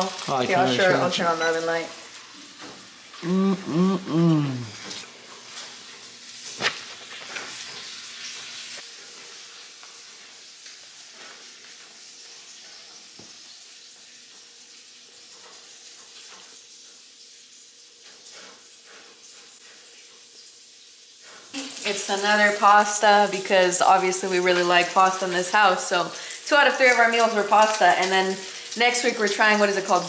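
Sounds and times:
food sizzling in a pan: 0:00.0 - 0:30.0
small crackles: 0:04.8 - 0:22.7, 0:23.9 - 0:30.0.

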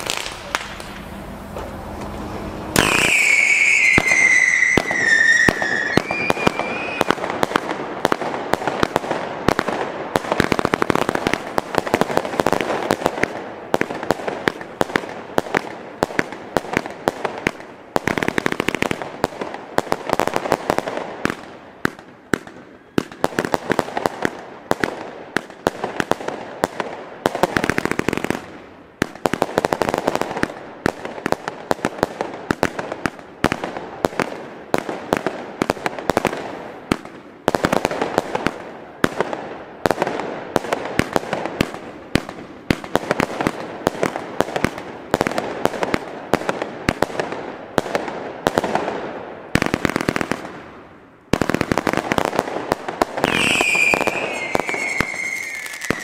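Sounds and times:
firework shots and crackling bursts: 0:00.0 - 0:56.0
firework whistle falling in pitch: 0:00.1 - 0:07.1, 0:53.3 - 0:56.0.

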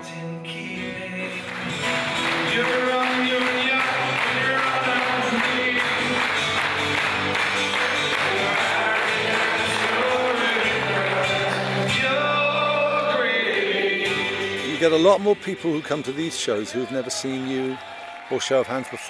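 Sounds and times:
cittern strummed: 0:00.5 - 0:16.6.

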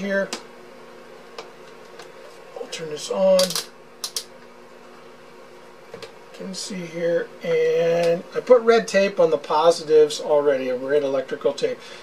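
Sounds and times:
faint hum: 0:00.0 - 0:12.0
rotary switch clicks: 0:03.4 - 0:04.3.

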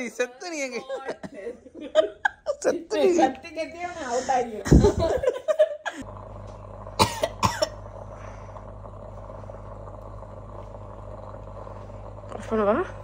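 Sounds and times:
low hum: 0:06.0 - 0:13.0
person coughing: 0:07.0 - 0:07.8.

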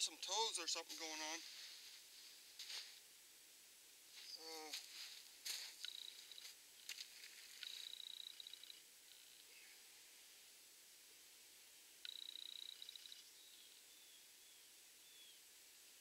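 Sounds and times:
small bird chittering trill: 0:05.8 - 0:09.8, 0:12.0 - 0:15.4.

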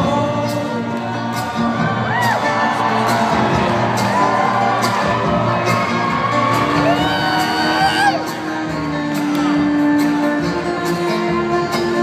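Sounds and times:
acoustic string band playing: 0:00.0 - 0:12.0
audience whooping and cheering: 0:00.9 - 0:10.0.

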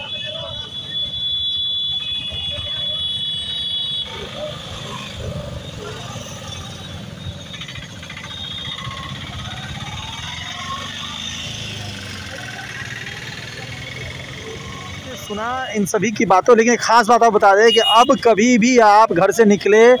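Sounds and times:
auto-rickshaw and motorcycle engines: 0:00.0 - 0:20.0
voices: 0:00.0 - 0:20.0.

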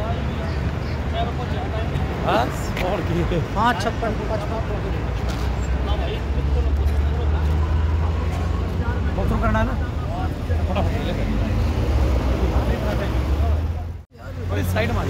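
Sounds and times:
highway traffic rumble: 0:00.0 - 0:15.0
people talking: 0:00.0 - 0:15.0.

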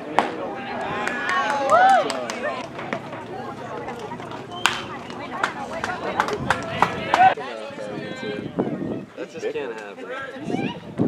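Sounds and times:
voices shouting: 0:00.4 - 0:09.2.

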